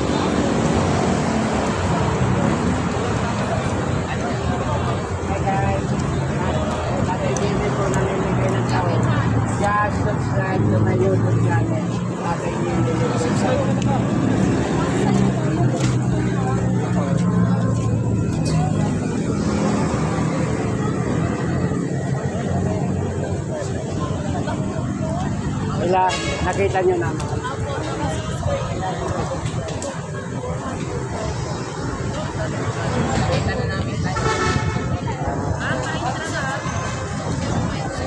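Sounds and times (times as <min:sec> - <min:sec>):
people chatting: 0:00.0 - 0:38.0
vehicle engine humming: 0:00.0 - 0:38.0.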